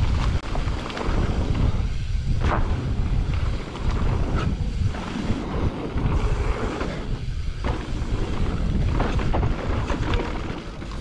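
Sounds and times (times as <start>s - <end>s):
bike knocks and clatter: 0.0s - 11.0s
wind buffeting microphone: 0.0s - 11.0s.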